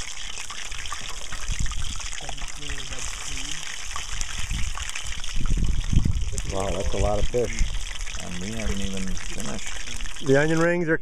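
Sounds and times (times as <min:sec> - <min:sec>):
oil sizzling in a pan: 0:00.0 - 0:10.8
man talking: 0:02.2 - 0:03.6, 0:06.3 - 0:11.0.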